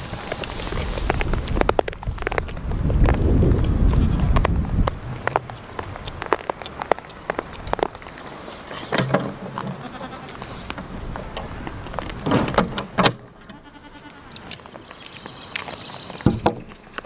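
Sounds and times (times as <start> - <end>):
goats bleating: 9.5 - 10.5, 13.4 - 14.3
clicks knocks and rustles: 10.6 - 13.6.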